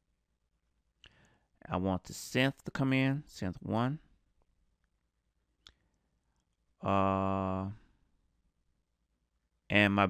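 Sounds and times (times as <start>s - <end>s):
man saying uh: 6.8s - 7.8s.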